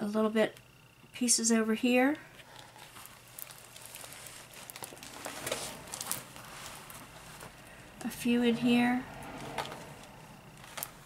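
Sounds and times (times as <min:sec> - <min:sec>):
plastic film crinkling: 0:02.5 - 0:07.8, 0:10.6 - 0:11.0.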